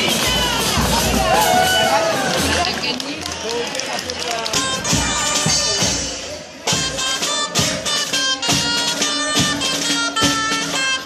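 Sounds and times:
bass drum: 0:00.0 - 0:02.9
shawm playing folk melody: 0:00.0 - 0:11.0
street crowd voices: 0:00.0 - 0:11.0.

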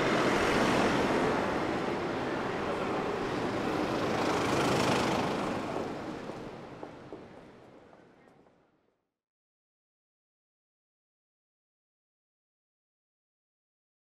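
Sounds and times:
street traffic noise: 0:00.0 - 0:08.9.

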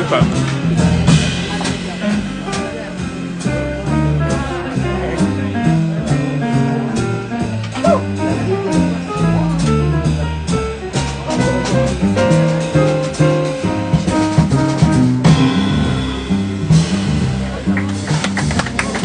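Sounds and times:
drums on cymbals: 0:00.0 - 0:19.0
jazz piano: 0:00.0 - 0:19.0
walking bass line: 0:00.0 - 0:19.0.

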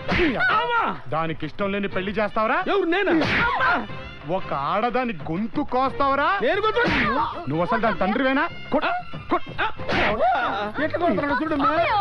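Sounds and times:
music: 0:00.0 - 0:12.0.

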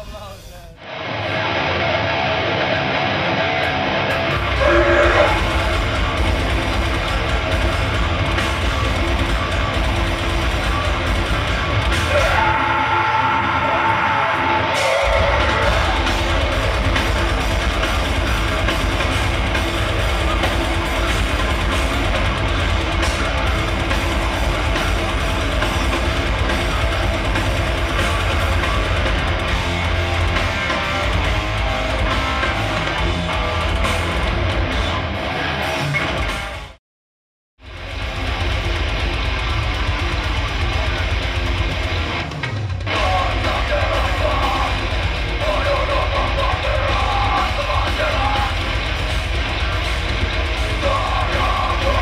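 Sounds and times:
heavy metal music: 0:00.0 - 0:36.8, 0:37.6 - 0:52.0.

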